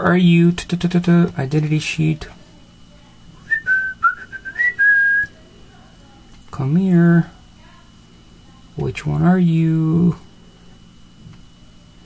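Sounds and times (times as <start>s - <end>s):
person whistling a tune: 3.5s - 5.3s.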